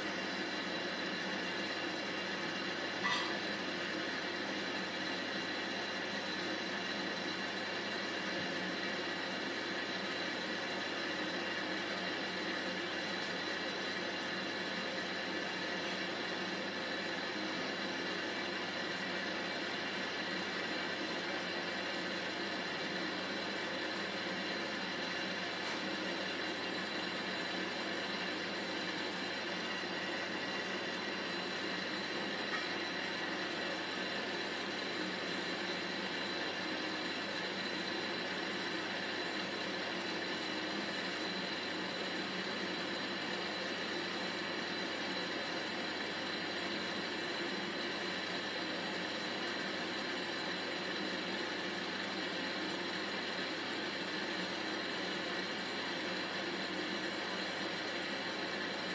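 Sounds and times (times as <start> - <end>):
washing machine humming: 0.0 - 58.9
faint high tone: 3.0 - 3.4.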